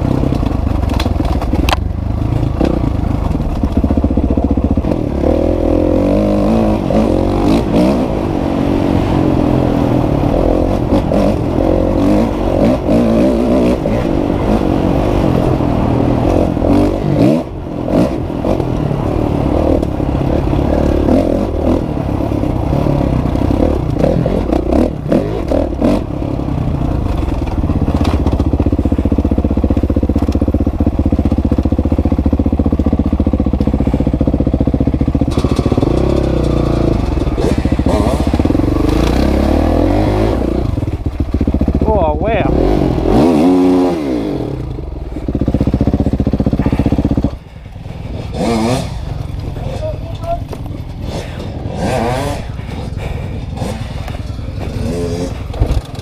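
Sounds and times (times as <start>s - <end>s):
bike clattering over bumpy ground: 0.0s - 5.1s, 23.4s - 39.3s, 45.1s - 56.0s
motorcycle engine running under load: 0.0s - 56.0s.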